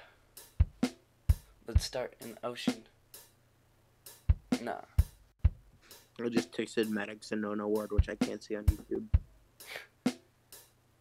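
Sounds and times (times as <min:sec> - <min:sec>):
hi-hat hiss: 0:00.0 - 0:03.4, 0:04.0 - 0:11.0
deep kick drum thump: 0:04.3 - 0:05.7.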